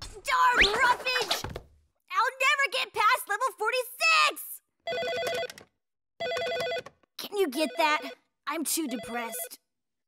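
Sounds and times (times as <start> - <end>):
electronic telephone ring: 4.9 - 5.6, 6.2 - 7.0, 7.7 - 8.2.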